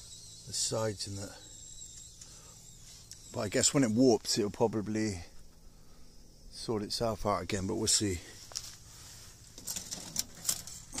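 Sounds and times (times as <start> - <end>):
fire crackling in a stove: 7.6 - 11.0.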